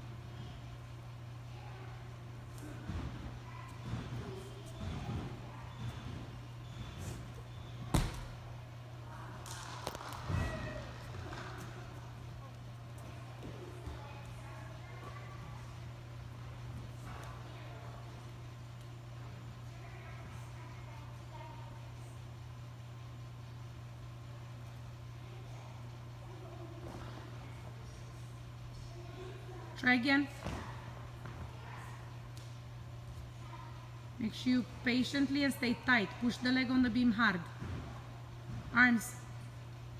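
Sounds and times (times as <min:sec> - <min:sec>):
steady low hum: 0:00.0 - 0:39.9.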